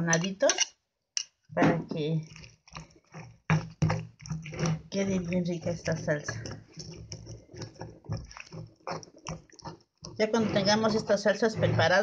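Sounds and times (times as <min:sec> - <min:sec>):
stone pestle pounding tomatoes: 0:02.8 - 0:12.0.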